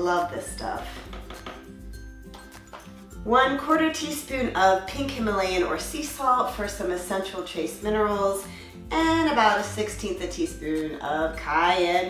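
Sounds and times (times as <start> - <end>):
soft background music: 0.0 - 12.0
plastic scoop knocking blender jar: 1.0 - 1.7.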